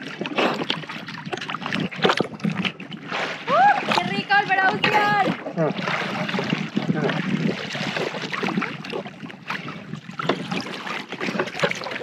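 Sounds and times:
sea water splashing: 0:00.0 - 0:12.0.

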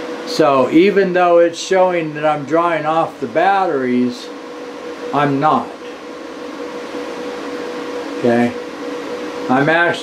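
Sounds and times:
electrical hum: 0:00.0 - 0:10.0
fan whir: 0:00.0 - 0:10.0.

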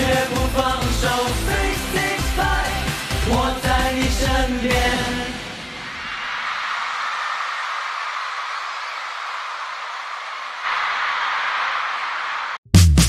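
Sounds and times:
concert crowd cheering and screaming: 0:05.5 - 0:12.6.

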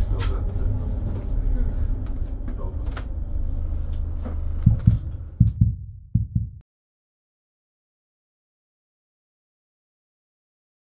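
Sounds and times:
diesel engine low rumble: 0:00.0 - 0:06.6
low thumps: 0:04.0 - 0:06.6.

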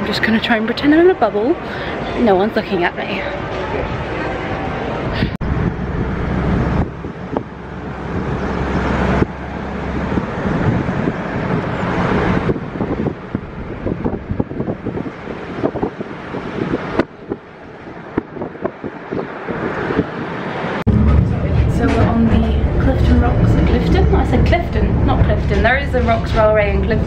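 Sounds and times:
car road and wind noise: 0:00.0 - 0:27.0.

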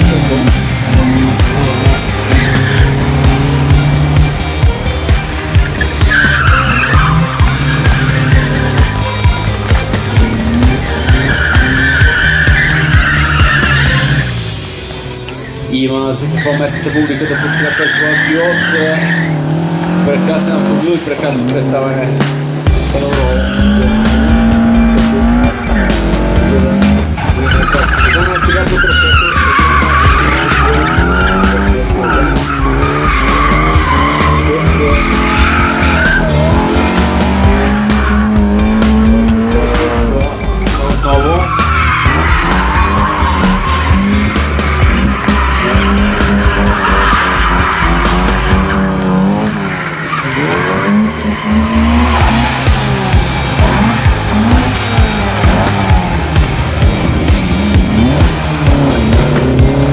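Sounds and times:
car engine revving: 0:00.0 - 0:59.9
tyres squealing: 0:00.0 - 0:59.9.

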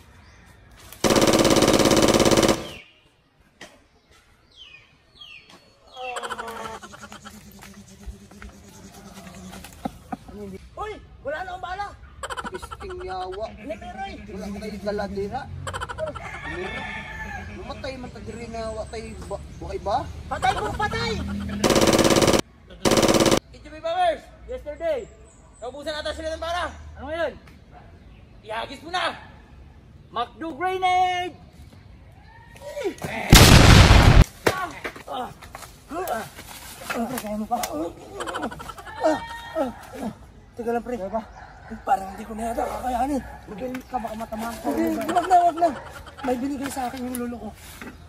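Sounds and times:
automatic gunfire burst: 0:01.0 - 0:02.8, 0:21.6 - 0:23.4, 0:33.3 - 0:34.2.

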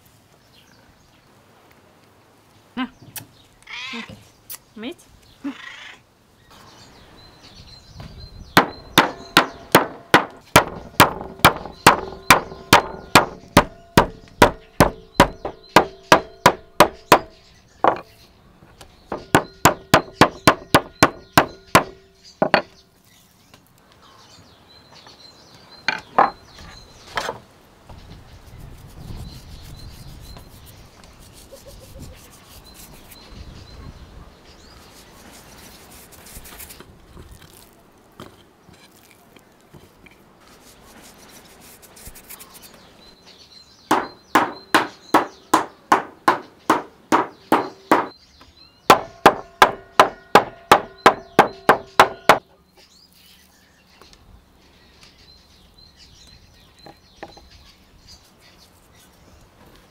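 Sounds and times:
meat mallet pounding on board: 0:08.6 - 0:17.3, 0:19.1 - 0:22.6, 0:43.9 - 0:48.2, 0:48.9 - 0:52.4
rubbing of meat: 0:28.4 - 0:33.2, 0:34.8 - 0:37.8, 0:40.4 - 0:42.8.

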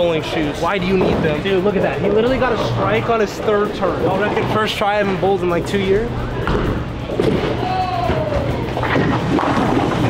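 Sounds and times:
music: 0:00.0 - 0:10.0
bowling balls and pins thudding: 0:06.3 - 0:10.0.

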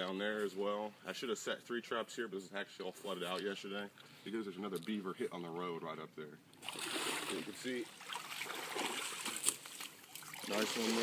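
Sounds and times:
water splashing: 0:06.6 - 0:11.0.

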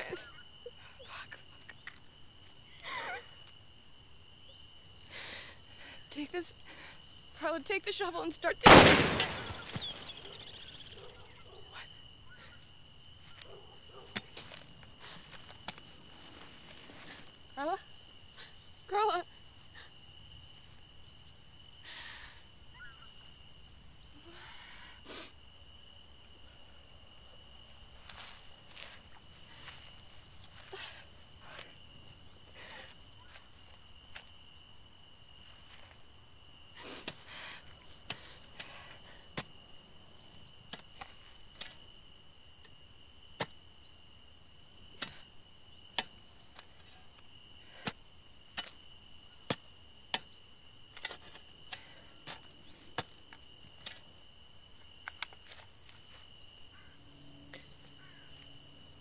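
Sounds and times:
crickets chirring: 0:00.0 - 0:59.0.

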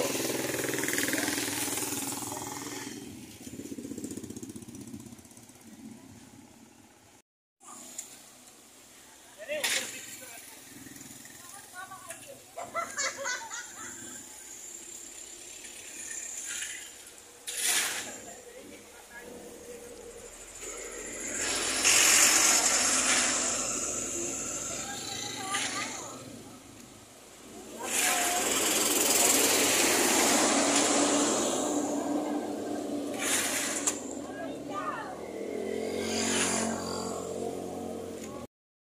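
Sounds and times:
motorcycle passing by: 0:00.0 - 0:06.3, 0:10.2 - 0:16.8, 0:17.6 - 0:26.6, 0:27.5 - 0:38.5
vehicle driving past: 0:28.4 - 0:34.3, 0:35.0 - 0:38.2.

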